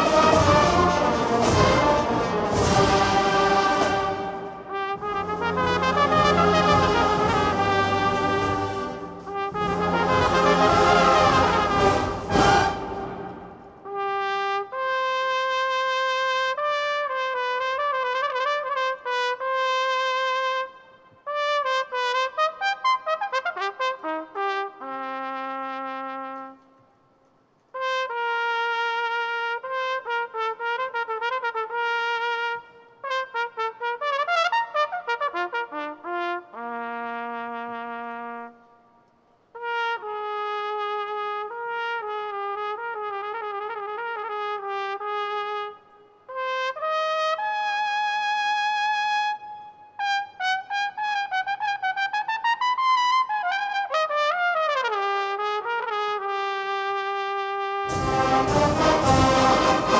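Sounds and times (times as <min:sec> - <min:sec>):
solo trumpet melody: 0:00.0 - 0:26.8, 0:27.7 - 0:59.9.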